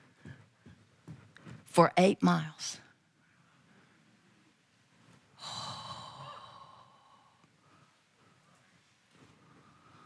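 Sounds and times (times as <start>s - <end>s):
woman sighing: 5.4s - 7.1s.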